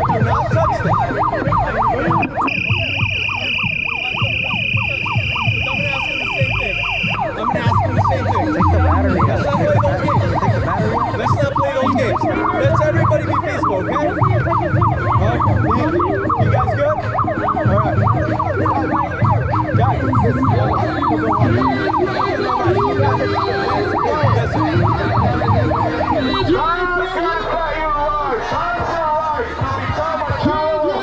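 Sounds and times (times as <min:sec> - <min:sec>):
electronic siren warbling: 0:00.0 - 0:29.1.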